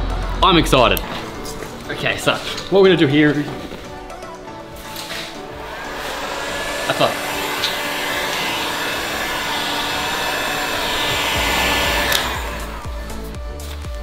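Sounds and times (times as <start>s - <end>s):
heat gun blowing: 4.7s - 13.8s.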